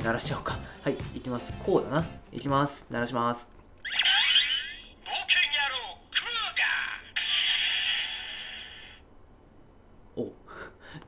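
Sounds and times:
recorded voice from toy speaker: 0:03.8 - 0:09.0.

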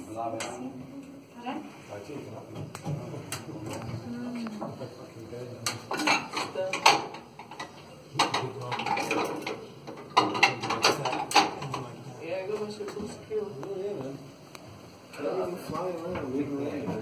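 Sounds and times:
faint background voices: 0:00.0 - 0:17.0
sharp clattering clinks and knocks: 0:05.7 - 0:11.9.

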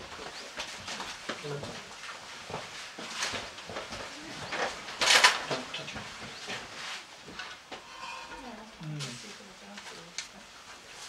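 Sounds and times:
knocks and scrapes of people moving: 0:00.0 - 0:11.0
loud scraping noise: 0:07.8 - 0:08.7.

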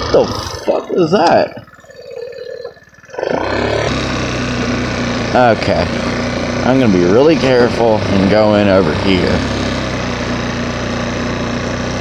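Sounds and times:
scooter engine revving: 0:00.0 - 0:12.0.

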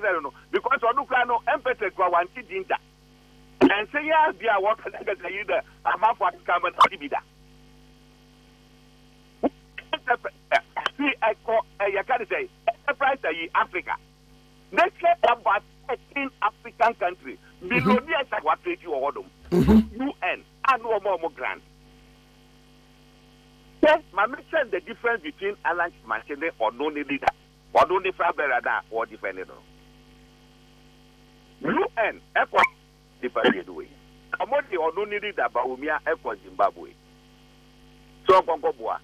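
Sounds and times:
man speaking over telephone line: 0:00.0 - 0:02.8, 0:03.6 - 0:07.2, 0:09.8 - 0:14.0, 0:14.8 - 0:21.6, 0:23.8 - 0:29.6, 0:31.6 - 0:36.9, 0:38.3 - 0:39.0
faint electrical hum: 0:00.0 - 0:39.0
man speaking: 0:14.8 - 0:20.2, 0:33.2 - 0:36.4.

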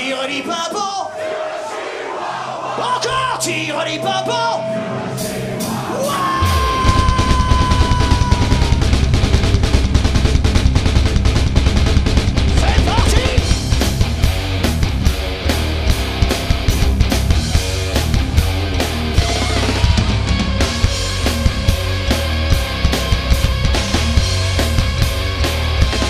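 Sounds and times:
drum kit: 0:05.0 - 0:26.0
electric guitar: 0:05.9 - 0:26.0.

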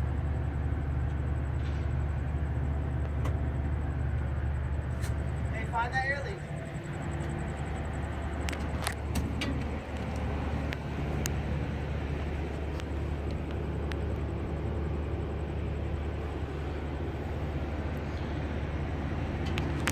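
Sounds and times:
car engine idling: 0:00.0 - 0:19.9.

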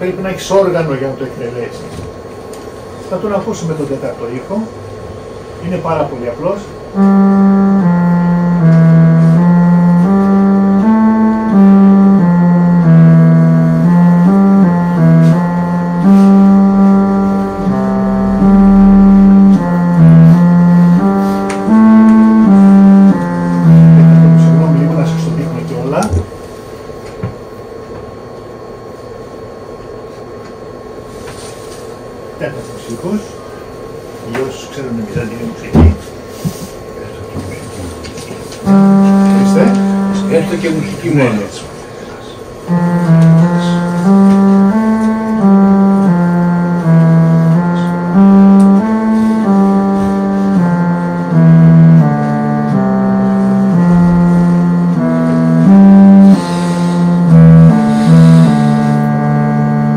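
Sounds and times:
electronic instrument melody: 0:05.6 - 0:26.3, 0:38.6 - 0:41.6, 0:42.6 - 0:59.9.

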